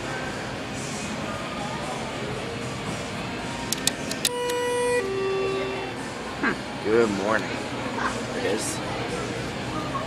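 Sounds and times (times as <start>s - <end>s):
sharp clicks: 3.7s - 4.6s
elevator arrival chime: 4.2s - 6.3s.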